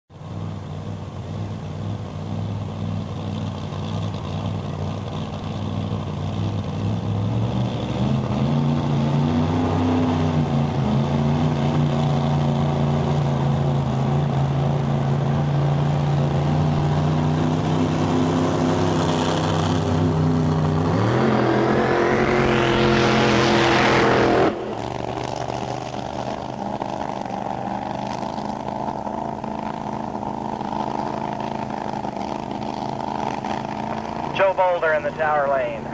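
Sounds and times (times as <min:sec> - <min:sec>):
quieter steady engine noise: 0:00.1 - 0:35.9
race car engine idling and revving: 0:00.1 - 0:35.9.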